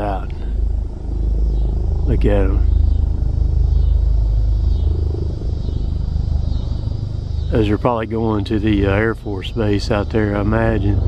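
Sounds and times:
helicopter rotor chop: 0:00.0 - 0:11.0.

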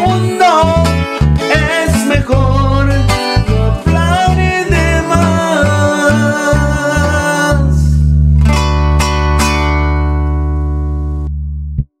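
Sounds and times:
guitar chord ringing: 0:00.0 - 0:11.8
low bass: 0:00.0 - 0:12.0.

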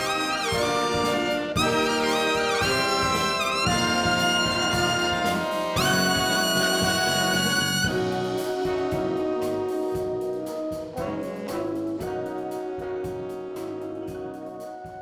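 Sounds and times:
big band brass section: 0:00.0 - 0:15.0
lead trumpet: 0:00.0 - 0:15.0.

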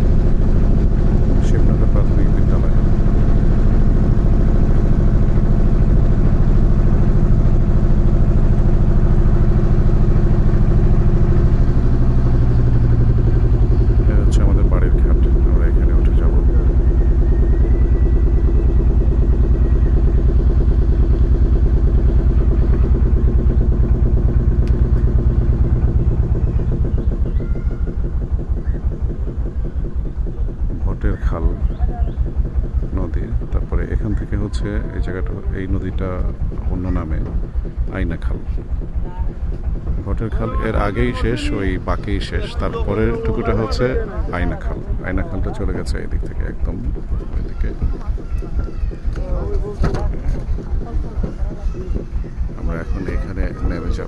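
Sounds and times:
boat engine running: 0:00.0 - 0:54.0.

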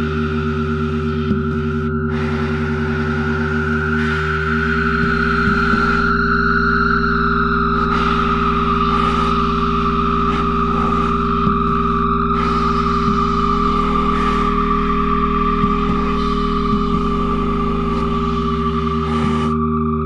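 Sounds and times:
experimental saxophone and guitar drones: 0:00.0 - 0:20.0.

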